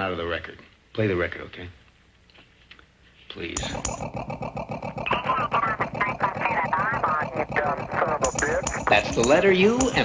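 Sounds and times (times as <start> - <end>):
chopped-up voice fragments: 4.9 - 10.0.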